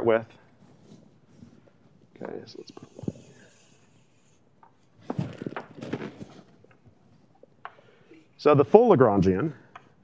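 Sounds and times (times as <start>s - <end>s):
chalk scratching on blackboard: 2.2s - 5.0s.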